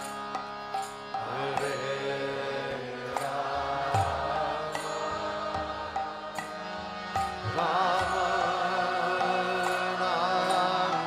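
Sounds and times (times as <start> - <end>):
harmonium sustained chords: 0.0 - 11.0.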